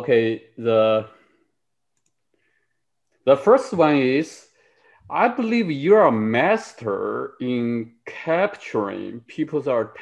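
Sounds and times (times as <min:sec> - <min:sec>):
man speaking: 0:00.0 - 0:01.2, 0:03.2 - 0:10.0
faint clicks: 0:01.9 - 0:02.4.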